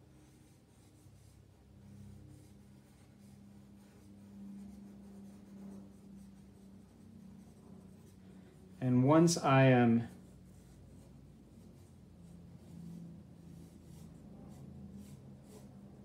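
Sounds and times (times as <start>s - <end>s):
pencil scratching on paper: 0.0s - 9.2s, 9.8s - 16.0s
low steady hum: 0.0s - 16.0s.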